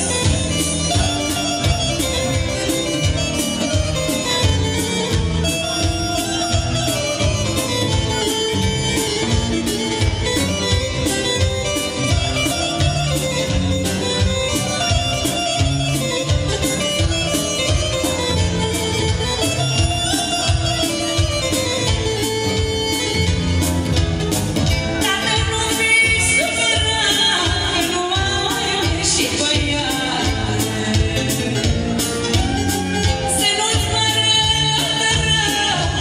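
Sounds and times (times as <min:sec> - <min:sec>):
live band playing folk dance tune: 0:00.0 - 0:36.0.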